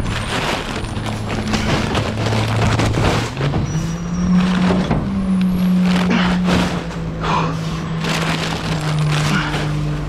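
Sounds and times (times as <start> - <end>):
paper bags rustling and knocking: 0.0 - 7.1, 7.9 - 10.0.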